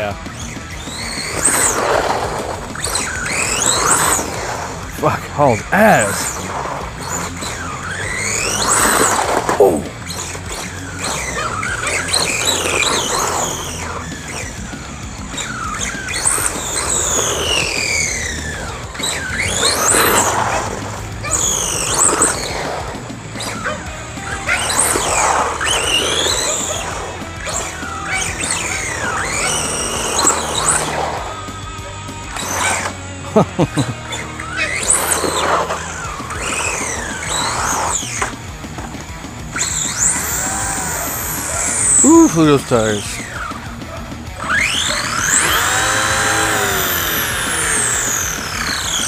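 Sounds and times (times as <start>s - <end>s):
electric motor whining: 0.0s - 49.0s
tyre noise on asphalt: 0.0s - 49.0s.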